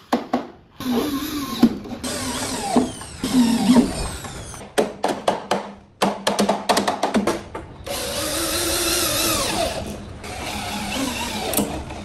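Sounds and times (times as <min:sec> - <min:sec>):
power drill whirring: 0:00.8 - 0:04.6, 0:07.9 - 0:12.0.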